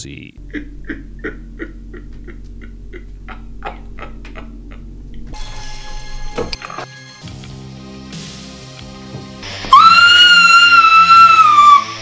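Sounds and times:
quiet background score: 0.0 - 6.8.

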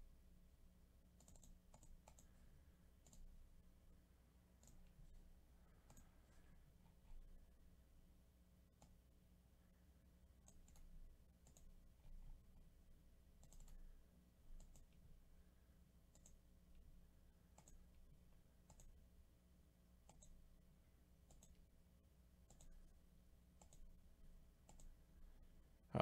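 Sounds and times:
faint steady low hum: 0.0 - 26.0
faint computer mouse clicks: 1.2 - 2.4, 3.0 - 3.3, 4.6 - 5.0, 5.8 - 6.2, 8.8 - 9.0, 10.4 - 11.7, 13.4 - 13.9, 14.6 - 15.0, 16.1 - 16.4, 17.5 - 18.0, 18.6 - 19.0, 20.0 - 20.4, 21.3 - 21.6, 22.5 - 23.0, 23.6 - 23.9, 24.7 - 25.0.

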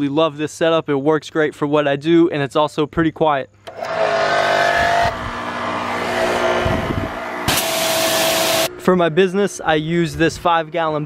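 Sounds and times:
pressure washer motor whine: 3.7 - 8.8.

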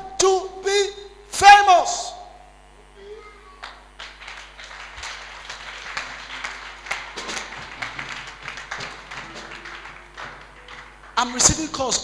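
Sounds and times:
congregation applauding: 3.6 - 12.0.

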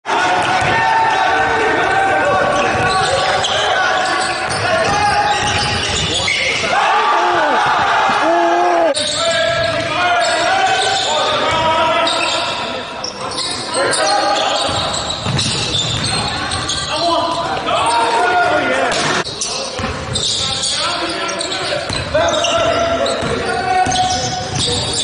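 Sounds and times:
players' voices echoing: 0.1 - 25.0.

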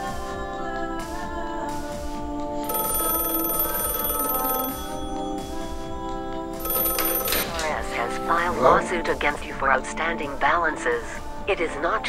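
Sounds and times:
background music: 0.0 - 12.0
telephone bell ringing: 1.7 - 9.5.

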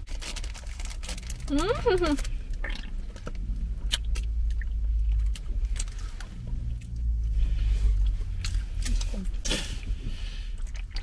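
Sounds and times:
snack bag crunching: 0.0 - 6.9
low rumble in car cabin: 0.0 - 11.0.

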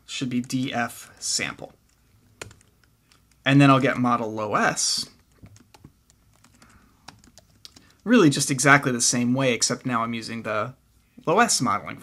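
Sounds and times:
computer keyboard keystrokes: 1.9 - 3.4, 5.2 - 8.0.

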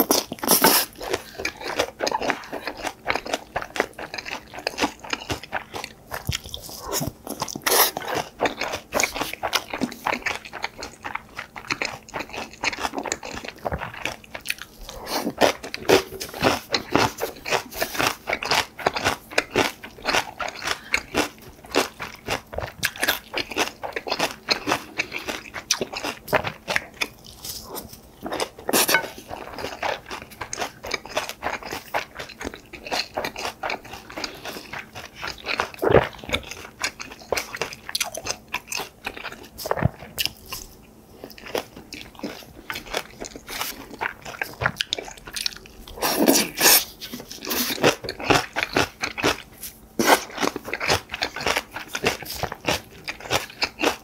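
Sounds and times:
wet crunchy chewing: 0.0 - 54.0.

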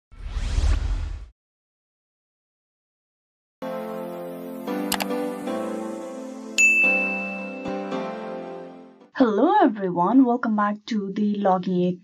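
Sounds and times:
whoosh: 0.1 - 1.3.

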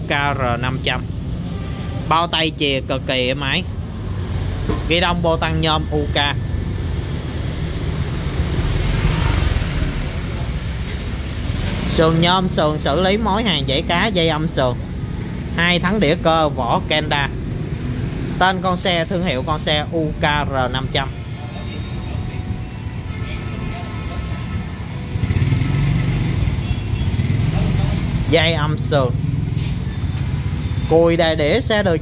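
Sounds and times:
street traffic rumble: 0.0 - 32.0
vehicle passing: 1.2 - 32.0.

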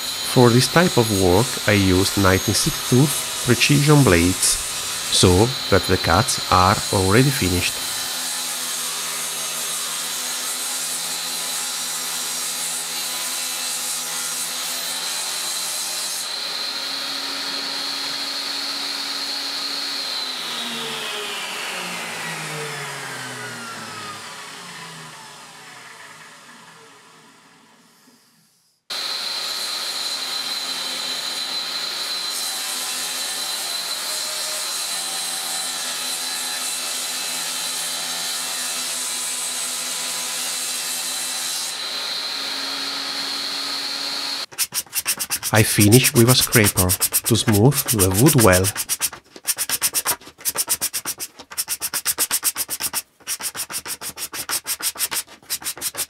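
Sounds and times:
saw spinning down: 0.0 - 11.0, 41.5 - 49.0
table saw whining: 0.0 - 51.3.

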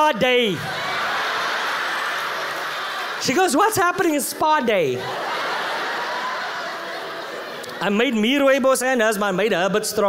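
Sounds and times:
audience laughing: 0.4 - 8.6.

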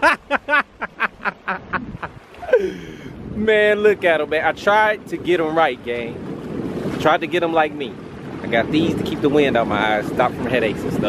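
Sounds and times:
man laughing hard: 0.0 - 3.1.

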